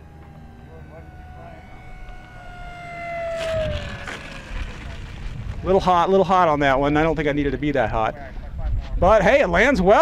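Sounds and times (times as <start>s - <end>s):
model plane motor whining: 0.0s - 5.7s
plane touching down on grass: 1.7s - 5.9s.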